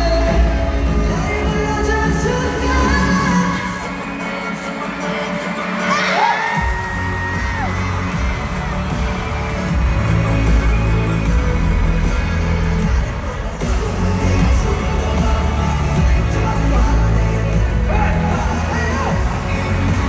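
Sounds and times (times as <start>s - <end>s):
crowd cheering: 0.0s - 20.0s
pop music with heavy bass: 0.0s - 20.0s.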